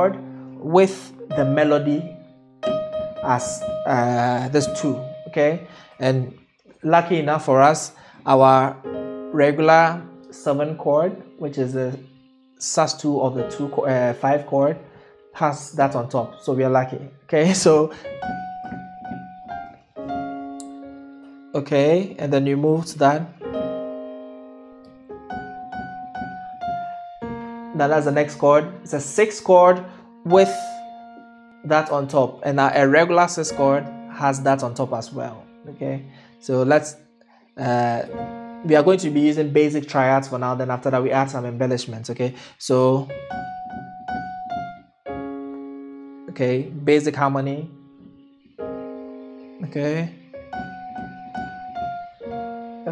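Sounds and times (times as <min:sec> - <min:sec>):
piano chords ringing: 0:00.0 - 0:52.9.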